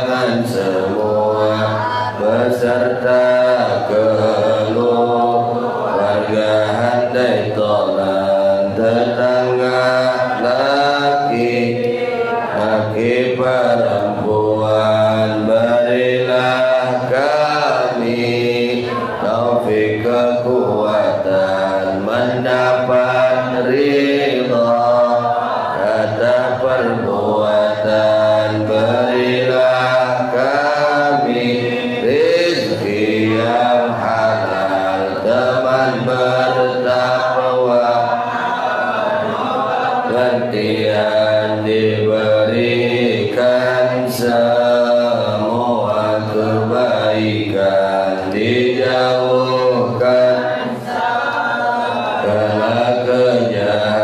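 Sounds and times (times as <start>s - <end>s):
man chanting a prayer: 0.0s - 38.3s, 40.0s - 50.9s, 52.2s - 54.0s.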